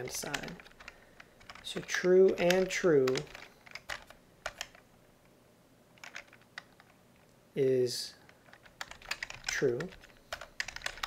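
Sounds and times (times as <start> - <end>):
computer keyboard keystrokes: 0.0 - 4.8, 6.0 - 6.9, 8.3 - 11.0.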